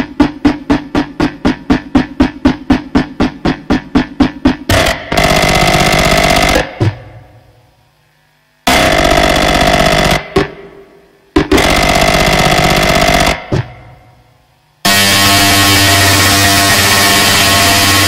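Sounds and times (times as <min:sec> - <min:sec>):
rapid noise pulses: 0:00.0 - 0:08.0, 0:08.6 - 0:18.0
dense distorted noise: 0:00.0 - 0:18.0.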